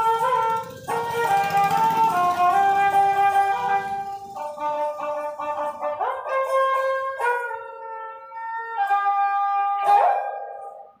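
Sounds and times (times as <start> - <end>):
bowed fiddle melody: 0.0 - 9.7.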